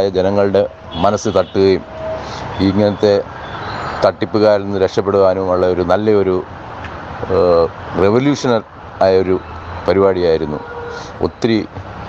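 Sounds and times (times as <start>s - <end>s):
man speaking over a phone: 0.0s - 1.9s, 2.5s - 3.3s, 7.2s - 11.7s
steady background noise: 0.0s - 12.0s.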